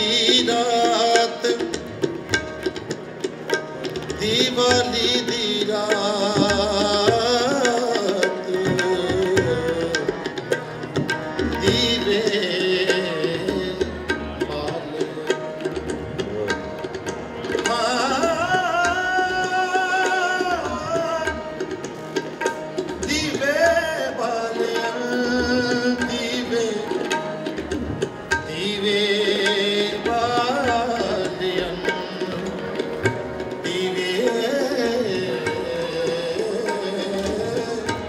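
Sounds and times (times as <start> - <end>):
harmoniums holding tones: 0.0 - 38.0
tabla strokes: 0.0 - 38.0.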